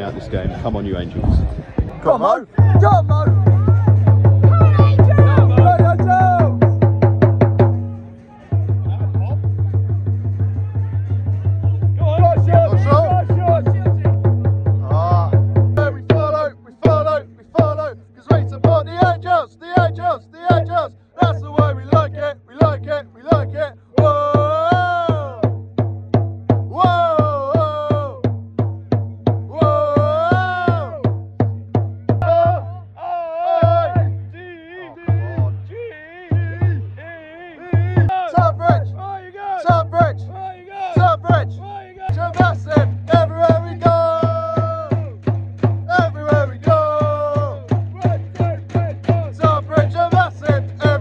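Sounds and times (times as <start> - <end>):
drum beaten fast: 2.5 - 34.3, 34.9 - 37.0, 37.6 - 51.0
fans chanting: 2.6 - 25.5, 26.7 - 28.2, 29.5 - 31.1, 32.1 - 51.0.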